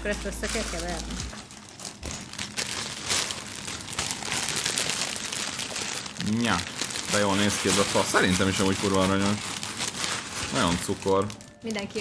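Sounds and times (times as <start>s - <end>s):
plastic bags crinkling: 0.0s - 12.0s.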